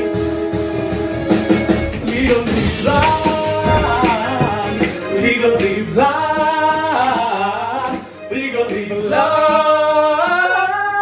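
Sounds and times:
male voices singing in harmony: 1.9 - 11.0.

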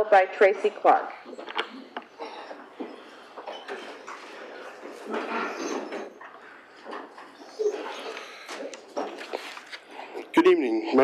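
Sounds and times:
shuffling: 1.2 - 10.4.

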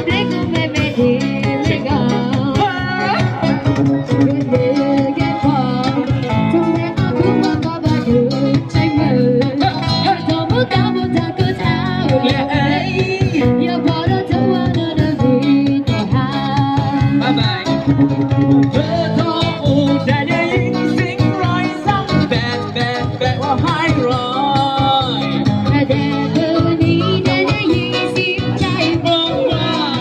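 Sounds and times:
live street band playing: 0.0 - 30.0
person singing into a microphone: 0.0 - 30.0.

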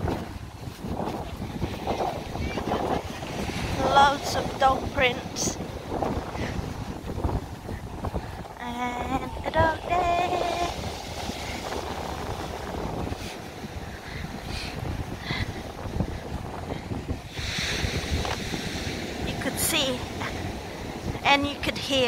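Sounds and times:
surf breaking on beach: 0.0 - 21.9
wind buffeting microphone: 0.0 - 22.0.

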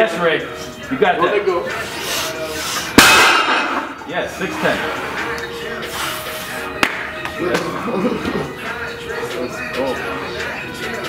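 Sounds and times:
heavy weight crashing on floor: 3.0 - 3.9.

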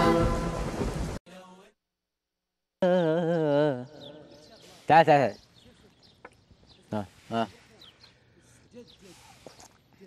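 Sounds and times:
thunder sound effect: 0.0 - 1.2.

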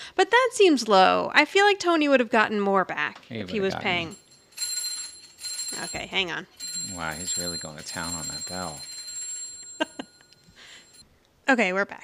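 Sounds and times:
hanging bell ringing: 3.7 - 11.0.

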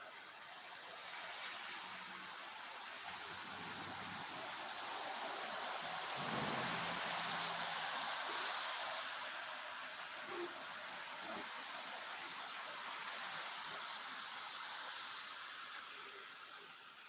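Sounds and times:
steady outdoor hiss: 0.0 - 17.0.

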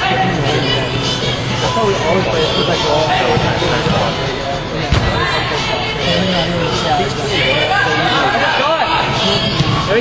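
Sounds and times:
players calling out and chattering: 0.0 - 10.0.

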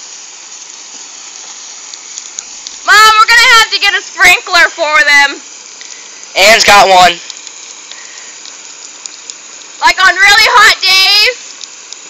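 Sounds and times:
garden hose spraying water: 0.0 - 12.0
person speaking: 6.3 - 7.3, 9.8 - 11.4.

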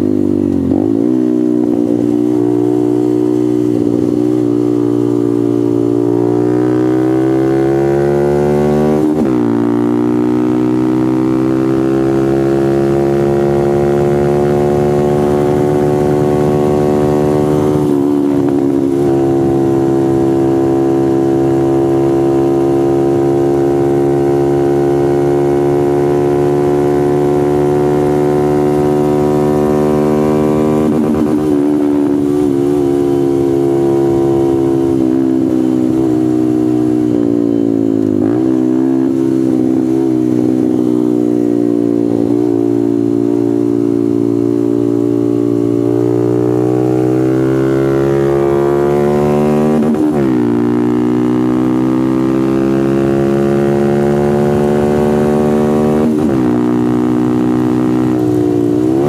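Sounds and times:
motorcycle engine at full throttle: 0.0 - 59.0.

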